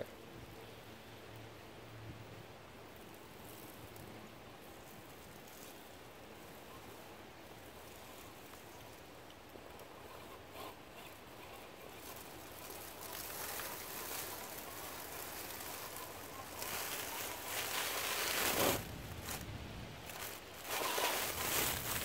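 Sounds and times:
toy car tyres crackling over leaves: 0:02.9 - 0:22.0.

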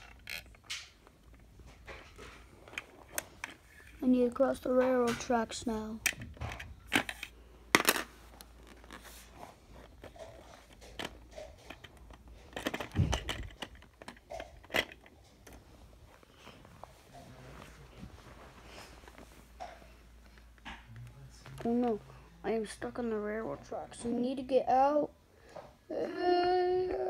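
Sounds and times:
plastic toy bricks clicking: 0:10.7 - 0:15.2.

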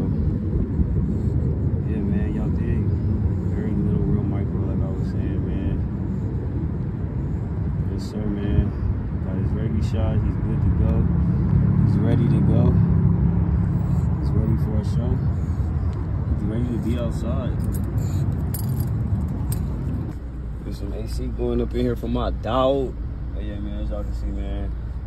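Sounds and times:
low rumble of traffic: 0:00.0 - 0:25.0
vehicle running close by: 0:00.0 - 0:25.0.

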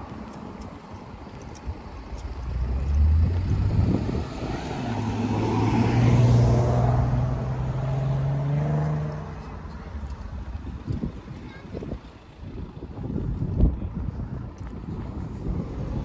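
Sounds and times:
car driving past: 0:02.3 - 0:09.7.

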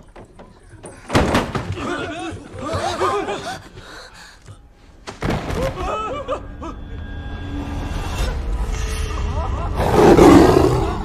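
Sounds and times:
tiger roaring: 0:09.8 - 0:11.0.

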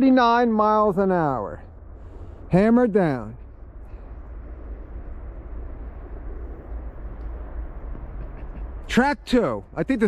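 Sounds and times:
distant freight train rumble: 0:00.0 - 0:10.0.

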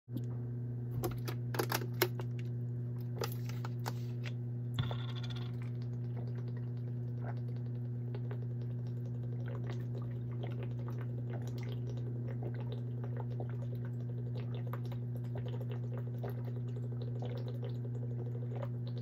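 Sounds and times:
steady low hum: 0:00.1 - 0:19.0
swallowing clicks: 0:05.8 - 0:10.7.

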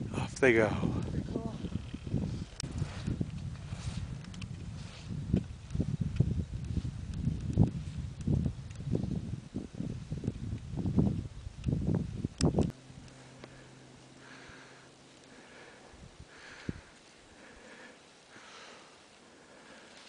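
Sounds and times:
wind buffeting microphone: 0:00.0 - 0:13.2, 0:15.9 - 0:17.5
skis running through snow: 0:02.2 - 0:09.3.

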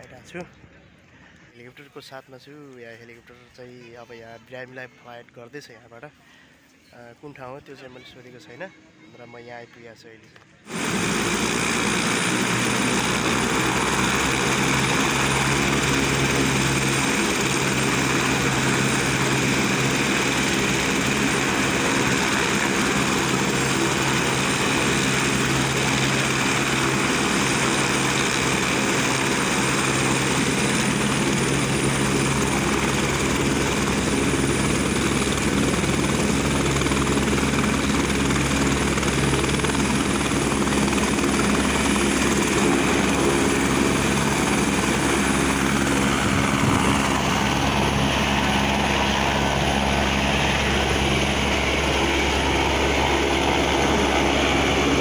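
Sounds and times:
helicopter rotor beat: 0:10.6 - 0:55.0
high turbine whine: 0:10.7 - 0:55.0.

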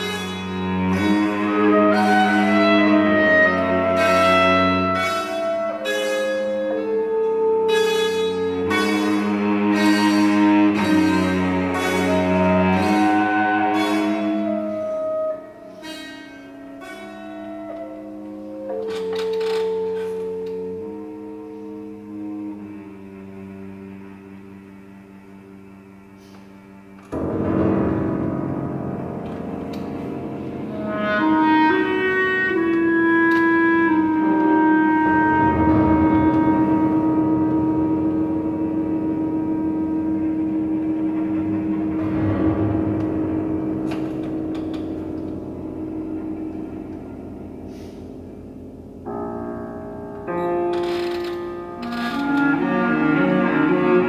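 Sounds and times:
clarinet cello and piano trio: 0:00.0 - 0:54.0.

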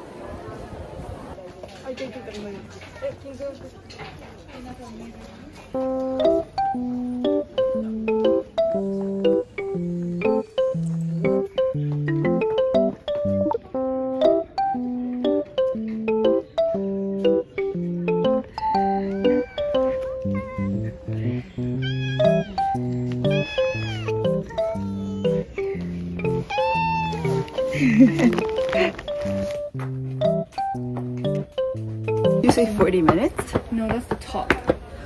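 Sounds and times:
background music with soft beat: 0:05.8 - 0:33.3
cat meowing: 0:18.8 - 0:20.6, 0:21.7 - 0:25.4, 0:26.3 - 0:27.7.

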